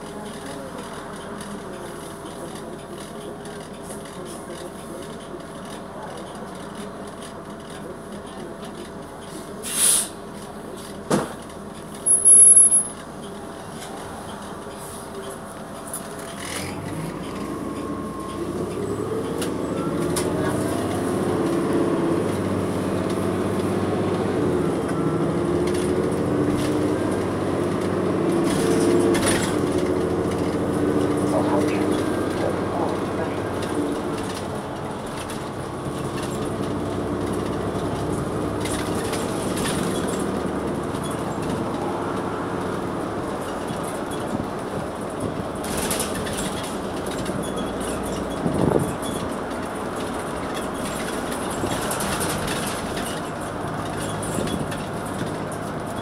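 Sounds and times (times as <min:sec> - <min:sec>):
bus engine droning: 0:00.0 - 0:56.0
rattles and knocks of bus body: 0:10.2 - 0:12.3, 0:13.0 - 0:56.0.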